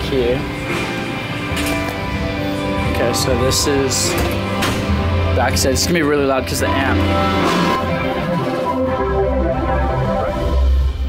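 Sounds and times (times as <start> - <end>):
worship band music: 0.4 - 10.8.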